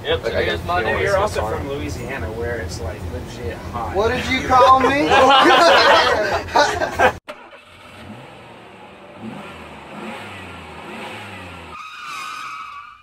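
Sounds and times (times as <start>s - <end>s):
voices: 0.0s - 7.2s
laughter: 4.2s - 7.2s
vehicle engine revving: 7.3s - 11.8s
tyre screech: 11.6s - 13.0s.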